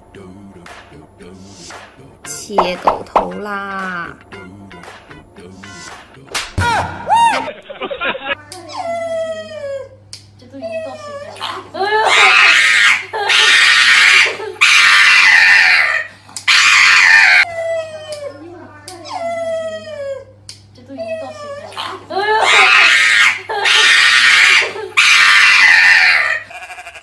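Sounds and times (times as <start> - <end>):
dog whining and howling: 12.1 - 18.3, 22.4 - 26.4.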